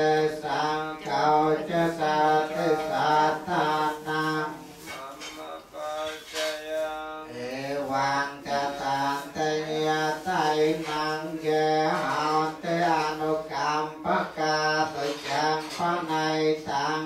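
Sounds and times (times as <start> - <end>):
man chanting melodically: 0.0 - 17.0.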